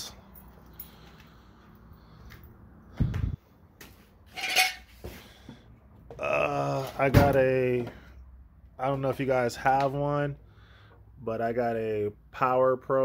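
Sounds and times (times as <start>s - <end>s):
metal tools clattering: 4.3s - 5.0s.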